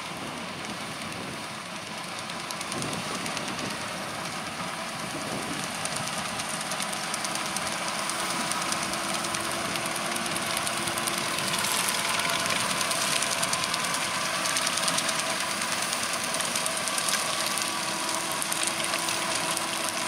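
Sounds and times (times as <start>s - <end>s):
muck spreader beaters rattling: 0.0s - 20.0s
tractor diesel engine under load: 0.0s - 20.0s.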